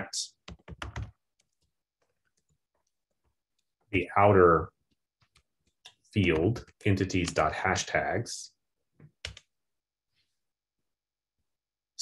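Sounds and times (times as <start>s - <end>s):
typing on computer keyboard: 0.4s - 1.7s, 9.2s - 9.5s.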